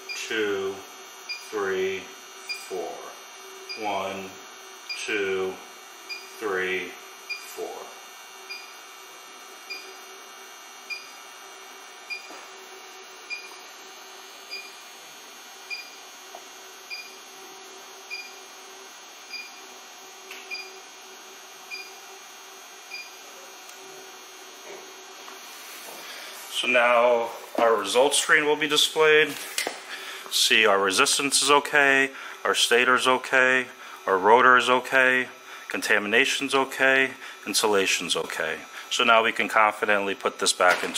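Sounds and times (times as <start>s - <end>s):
faint steady hum: 0.0s - 40.9s.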